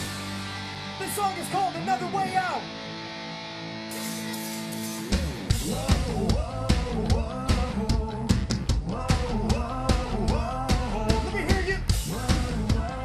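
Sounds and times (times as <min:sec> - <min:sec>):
live rock band playing: 0:00.0 - 0:08.8
person singing: 0:05.5 - 0:13.0.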